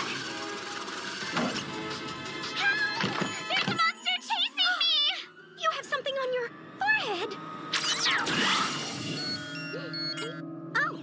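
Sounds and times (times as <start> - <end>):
background music: 0.0 - 11.0
stepped electronic beeping tones: 9.0 - 10.4.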